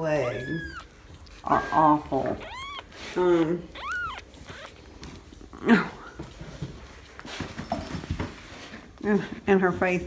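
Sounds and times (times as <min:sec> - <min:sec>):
faint rustling and handling: 0:00.1 - 0:10.0
cat meowing: 0:00.2 - 0:03.0, 0:03.7 - 0:04.8.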